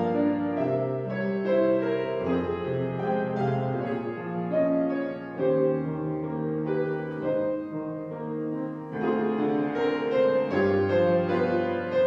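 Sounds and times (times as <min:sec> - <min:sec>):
piano chords and melody: 0:00.0 - 0:12.0.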